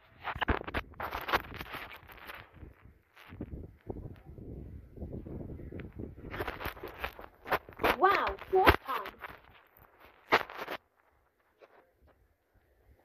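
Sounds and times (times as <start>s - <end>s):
camera handling rustling and knocks: 0.3s - 3.5s.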